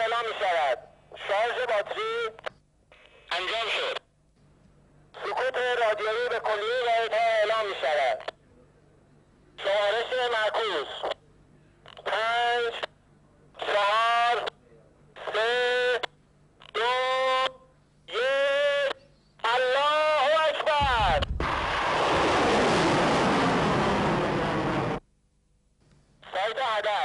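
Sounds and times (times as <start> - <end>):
voice over radio calling out: 0.0 - 2.4, 3.2 - 4.0, 5.2 - 8.4, 9.6 - 11.2, 11.9 - 13.0, 13.6 - 14.6, 15.2 - 21.3, 26.2 - 27.0
rocket motor roaring: 20.8 - 25.0.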